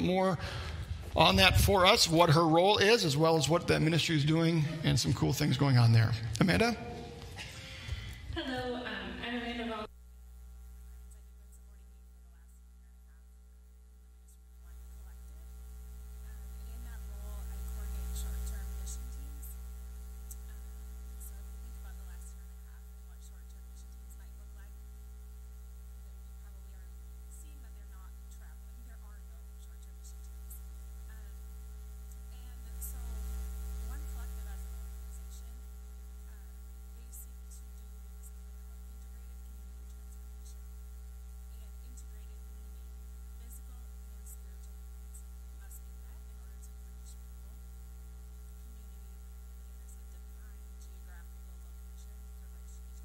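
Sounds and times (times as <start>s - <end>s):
electrical mains hum: 0.0s - 53.0s.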